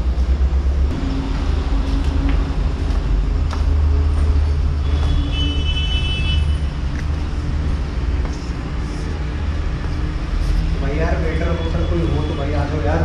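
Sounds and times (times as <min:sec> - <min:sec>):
distant road traffic rumble: 0:00.0 - 0:13.0.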